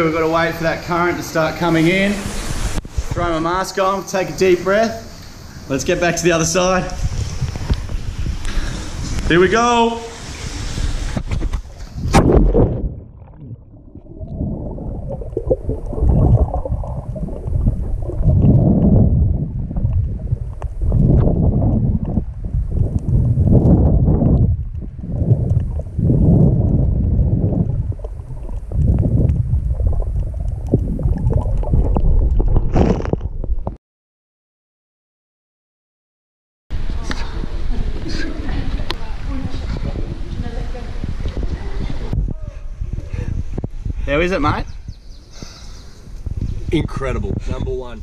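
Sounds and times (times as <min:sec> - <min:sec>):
muffled underwater rushing water: 0:00.0 - 0:33.8, 0:36.7 - 0:44.0
water splash: 0:10.1 - 0:33.7.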